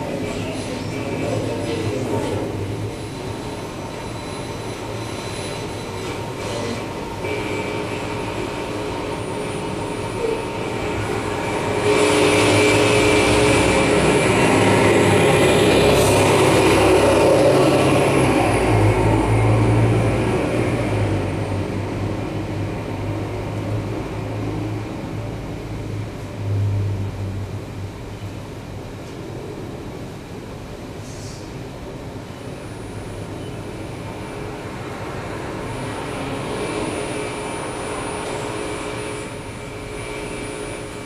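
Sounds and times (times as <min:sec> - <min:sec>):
low hum: 0:00.0 - 0:28.5
dense noise drone: 0:00.0 - 0:41.0.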